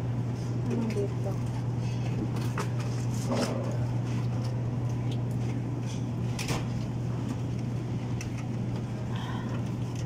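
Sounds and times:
refrigerated display case hum: 0.0s - 10.0s.

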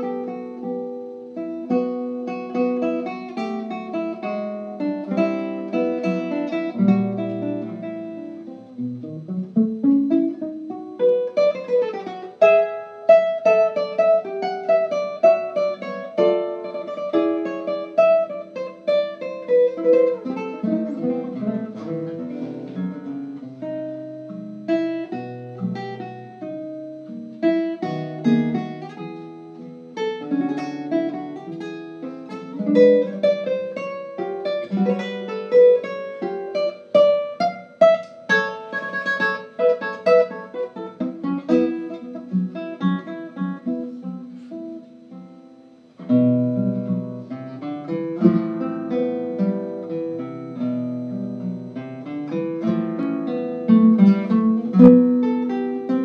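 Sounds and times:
fingerstyle classical guitar: 0.0s - 56.0s.

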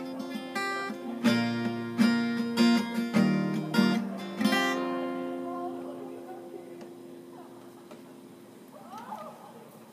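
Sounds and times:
acoustic guitar chord ringing: 0.0s - 8.7s.

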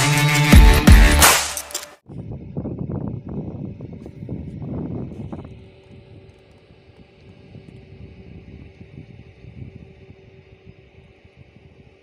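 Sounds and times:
wind buffeting microphone: 2.1s - 12.0s.

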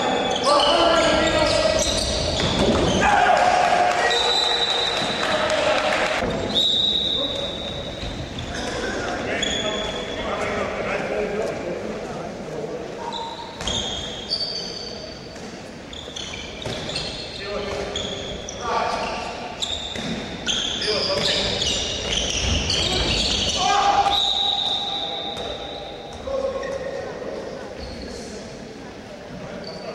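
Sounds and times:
shoes squeaking on floor: 0.0s - 3.0s, 6.2s - 10.6s, 13.0s - 27.1s, 27.7s - 28.3s, 29.5s - 29.9s
players calling out: 0.0s - 10.7s
ball bouncing on wooden court: 1.8s - 3.0s, 19.7s - 20.5s.

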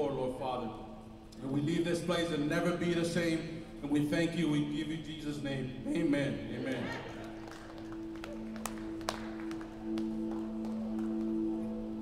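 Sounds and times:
worship band sustained drone: 7.8s - 12.0s.

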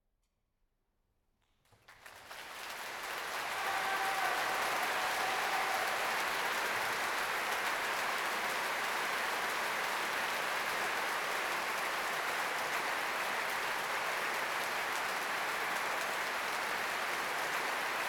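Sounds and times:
audience applause: 1.8s - 18.0s
drawn-out shout from crowd: 3.4s - 6.4s.

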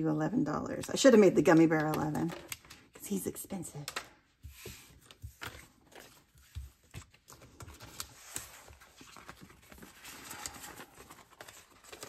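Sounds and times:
paper rustling: 3.9s - 12.0s.

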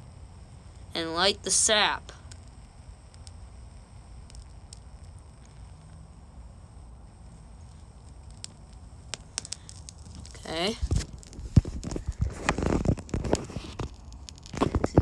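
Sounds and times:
faint low rumble: 0.0s - 15.0s.

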